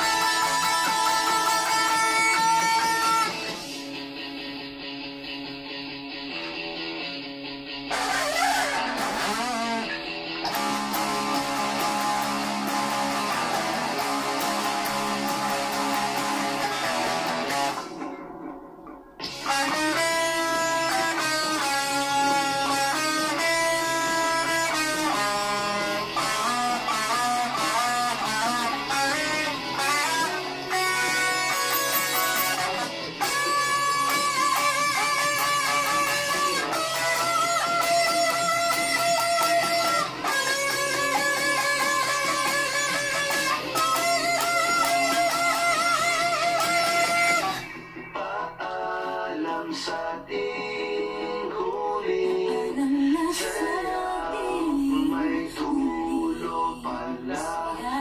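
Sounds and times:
electric guitar lead melody: 0:00.0 - 0:58.0.

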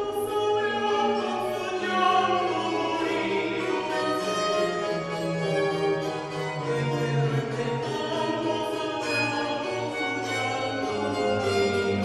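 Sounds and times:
violins playing: 0:00.0 - 0:12.0.

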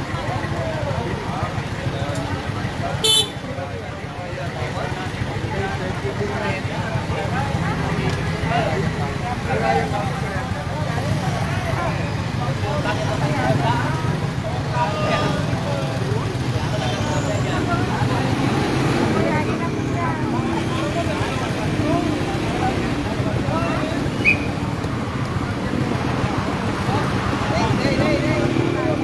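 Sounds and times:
overlapping indistinct voices: 0:00.0 - 0:29.0
vehicle engines and road noise: 0:00.0 - 0:29.0.

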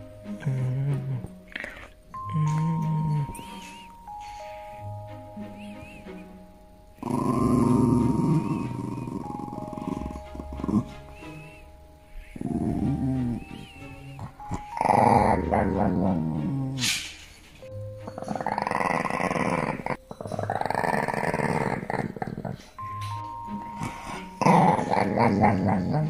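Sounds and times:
background music with held notes: 0:00.0 - 0:26.0
dog grumbling and growling: 0:00.3 - 0:03.9, 0:07.0 - 0:11.5, 0:12.3 - 0:17.1, 0:18.0 - 0:22.8, 0:23.8 - 0:26.0.

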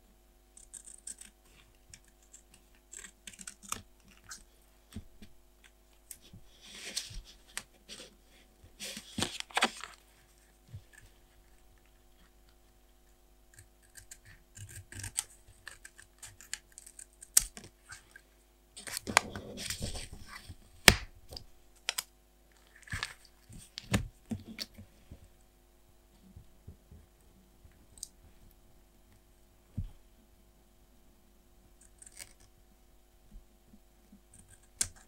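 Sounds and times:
scissors snipping paper: 0:00.6 - 0:04.4, 0:13.5 - 0:18.1, 0:31.8 - 0:32.5.

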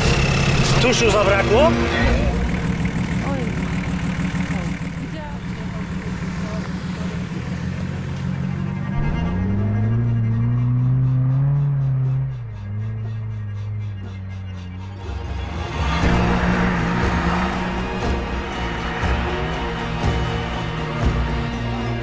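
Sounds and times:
engines humming: 0:00.0 - 0:22.0
low bowed-string music: 0:00.0 - 0:22.0
faint voices: 0:01.9 - 0:07.6.

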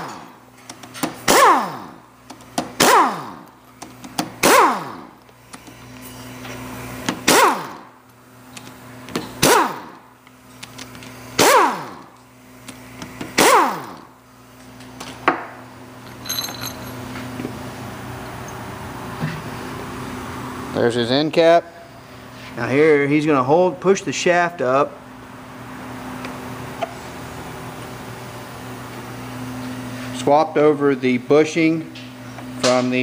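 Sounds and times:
cordless drill bursts: 0:13.3 - 0:14.1.

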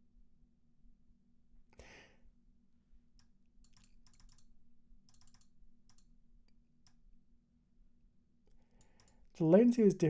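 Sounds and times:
low steady hum: 0:00.0 - 0:10.0
keyboard keystrokes: 0:03.2 - 0:04.5, 0:05.1 - 0:06.1.

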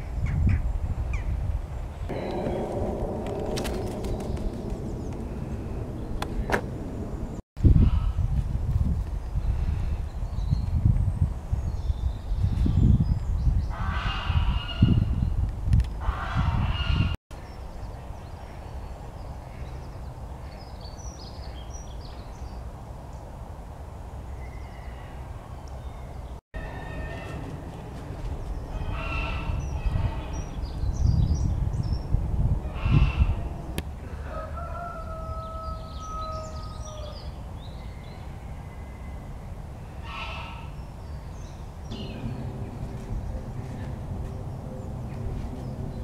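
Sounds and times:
low rumble: 0:02.1 - 0:08.6, 0:41.8 - 0:46.0
long level bird call: 0:32.7 - 0:45.8
goose honking: 0:40.0 - 0:40.7.

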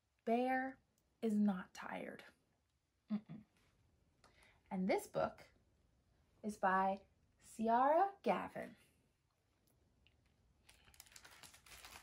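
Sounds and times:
plastic-covered book crinkling: 0:10.6 - 0:12.0.

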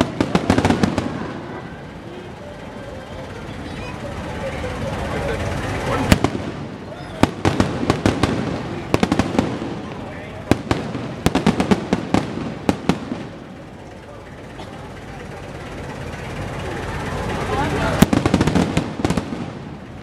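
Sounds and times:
fireworks bursting: 0:00.0 - 0:02.1, 0:03.2 - 0:20.0.

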